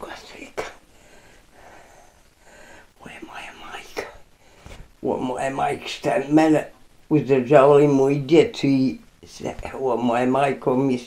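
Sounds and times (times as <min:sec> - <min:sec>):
person whispering: 0:00.0 - 0:00.9, 0:02.8 - 0:06.5.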